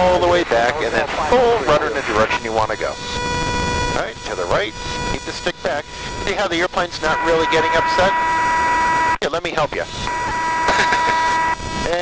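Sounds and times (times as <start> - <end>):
stall warning horn tone: 0.0 - 12.0.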